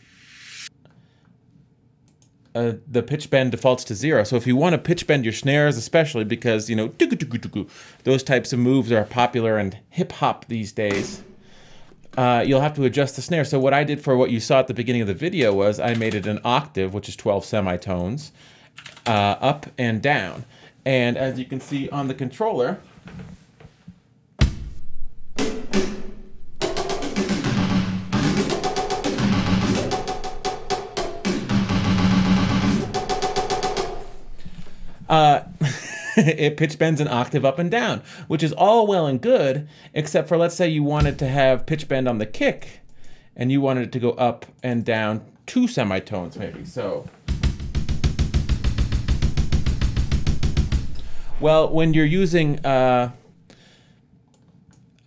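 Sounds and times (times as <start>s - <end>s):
drum beat with snare rolls: 25.4s - 34.1s, 41.0s - 42.9s, 47.2s - 52.8s
fast run of drum hits: 41.0s - 42.7s, 47.3s - 51.5s.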